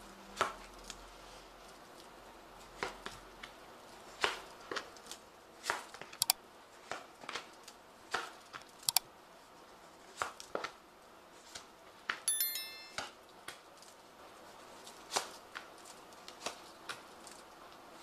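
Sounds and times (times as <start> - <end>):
high ringing clink: 12.3 - 13.1.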